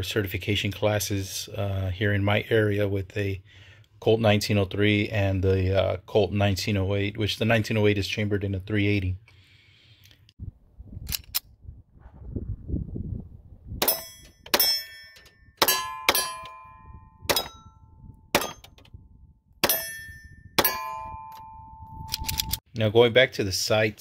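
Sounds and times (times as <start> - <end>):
steel target clanging: 13.8 - 17.8, 18.4 - 18.8, 19.6 - 21.6
pistol shots: 18.3 - 18.7.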